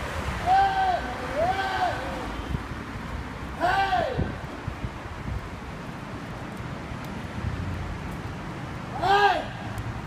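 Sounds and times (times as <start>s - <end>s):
man yelling wordless shouts: 0.4s - 2.3s, 3.6s - 4.4s, 9.0s - 9.6s.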